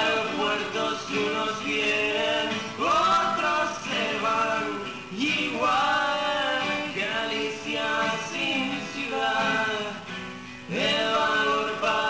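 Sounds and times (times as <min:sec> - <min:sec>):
man singing: 0:00.0 - 0:10.1, 0:10.7 - 0:12.0
acoustic guitars: 0:00.0 - 0:12.0.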